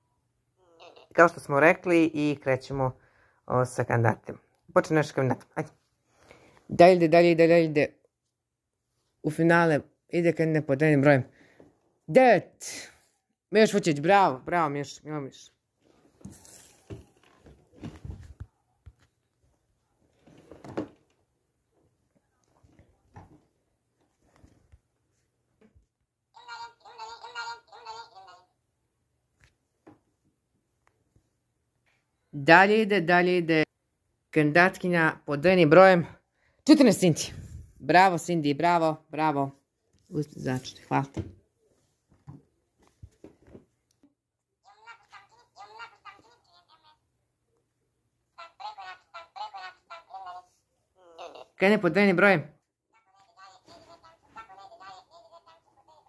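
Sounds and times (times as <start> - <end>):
high-pitched squeaky voice: 26.4 - 28.5, 44.6 - 47.0, 48.4 - 51.6, 53.0 - 56.0.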